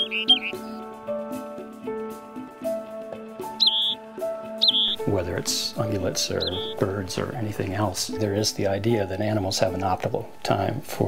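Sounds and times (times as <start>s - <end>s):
small bird chirping and trilling: 0.0s - 0.8s, 3.5s - 4.0s, 4.6s - 5.1s, 6.1s - 6.8s
background music of sustained notes: 0.0s - 11.0s.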